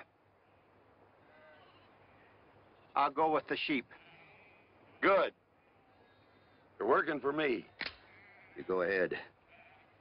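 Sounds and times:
low steady hiss: 0.0 - 8.2
faint sheep bleating: 0.0 - 10.0.

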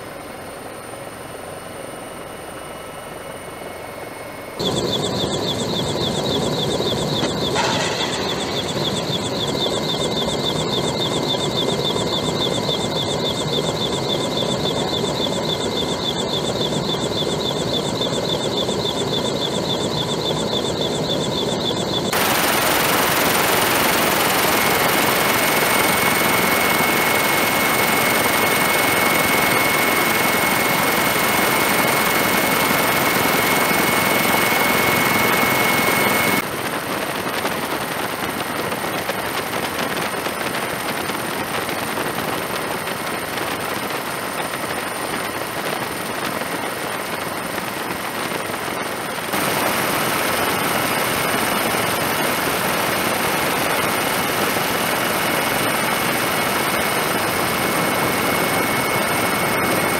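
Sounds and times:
helicopter rotor and turbine whine: 0.0 - 59.9.

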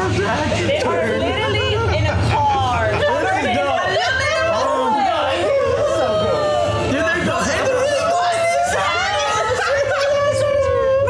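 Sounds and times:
people talking and laughing: 0.0 - 11.0.

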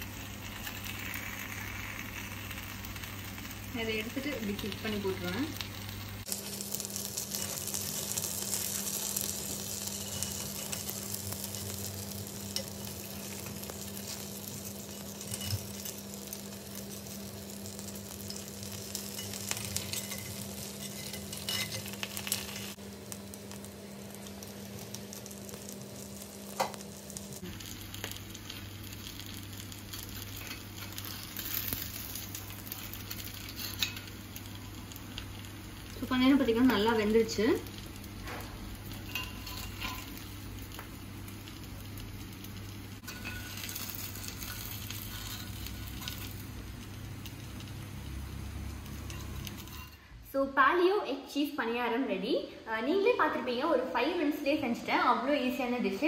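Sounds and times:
food sizzling in hot oil: 0.0 - 50.1
metal spoon clicking and scraping: 14.9 - 16.0, 19.1 - 22.7, 33.1 - 34.1, 39.1 - 40.1, 43.0 - 46.3.

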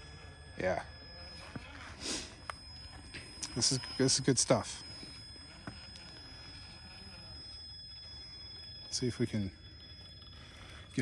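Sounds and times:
rc car motor running: 0.0 - 11.0.

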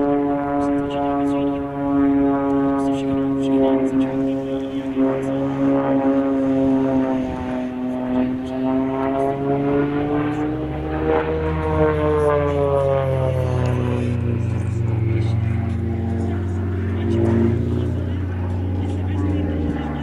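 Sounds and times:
propeller plane droning overhead: 0.0 - 20.0.

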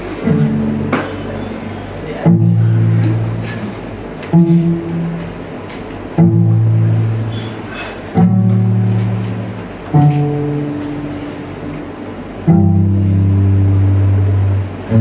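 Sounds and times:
bowed cello low notes: 0.0 - 15.0.

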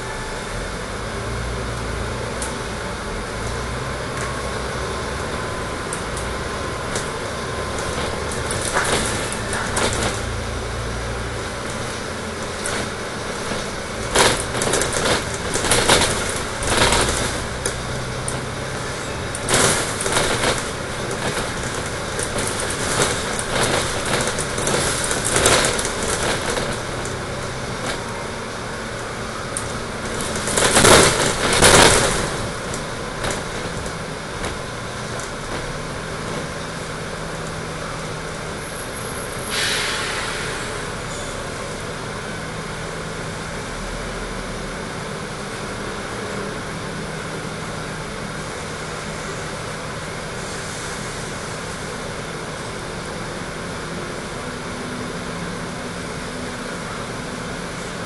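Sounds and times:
bus engine and road noise: 0.0 - 58.0
bus idling hum: 0.0 - 58.0
short hiss: 39.4 - 41.4.

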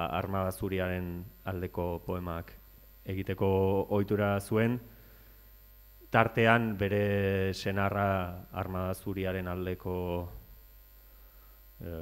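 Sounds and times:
man speaking into a microphone: 0.0 - 4.9, 6.0 - 10.4, 11.8 - 12.0
low electrical mains hum: 0.0 - 12.0.

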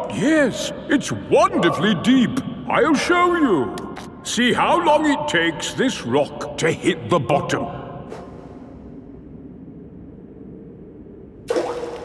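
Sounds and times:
dull cave rumble: 0.0 - 12.0.

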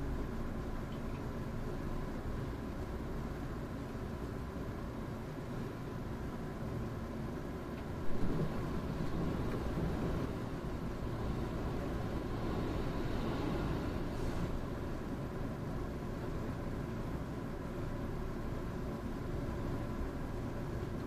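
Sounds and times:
train wheels rumbling on rails: 7.7 - 16.6.

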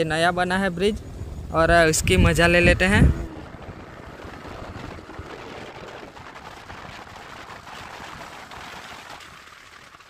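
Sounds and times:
wind and motorcycle riding noise: 0.0 - 10.0.

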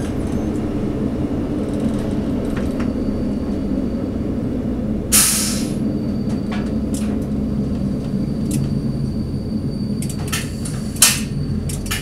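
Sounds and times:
diesel railcar droning: 0.0 - 12.0
air brakes hissing: 5.1 - 6.5, 8.6 - 11.7.

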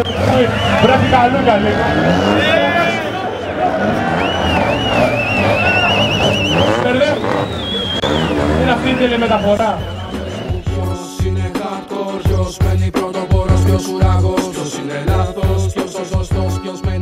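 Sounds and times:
tyres squealing: 0.0 - 10.8
car engine running: 0.0 - 10.9.

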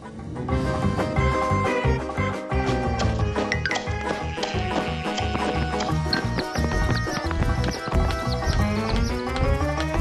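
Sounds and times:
upbeat cartoon music: 0.0 - 10.0.

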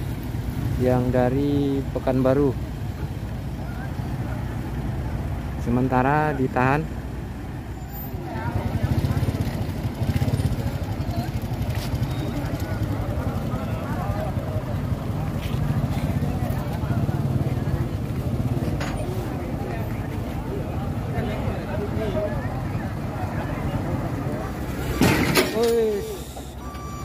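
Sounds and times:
large engine rumbling: 0.0 - 27.0
crowd chatter: 2.5 - 5.5, 7.5 - 27.0.

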